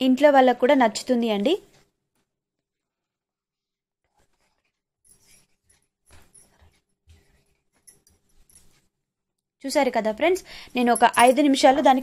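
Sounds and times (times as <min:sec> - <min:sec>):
faint handling sounds: 0:04.1 - 0:09.0.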